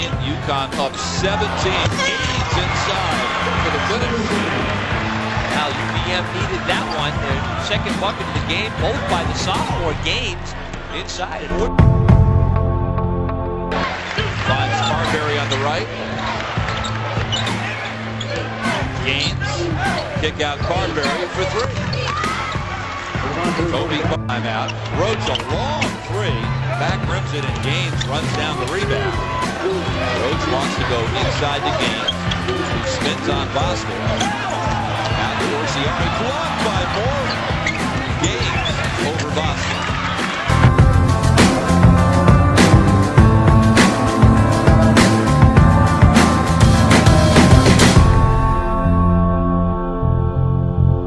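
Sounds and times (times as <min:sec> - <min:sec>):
crowd voices: 0:00.0 - 0:48.8
sneakers squeaking: 0:14.3 - 0:22.9, 0:24.7 - 0:26.1, 0:31.8 - 0:33.2, 0:34.0 - 0:40.5.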